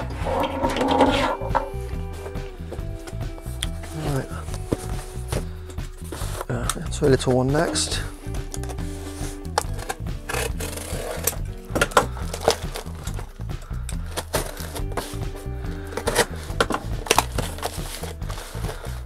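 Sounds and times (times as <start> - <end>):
cardboard scraping and creasing: 0.0 - 1.7, 3.4 - 13.4, 14.0 - 19.0
background music: 0.0 - 19.0
utility knife slicing tape: 9.5 - 11.4.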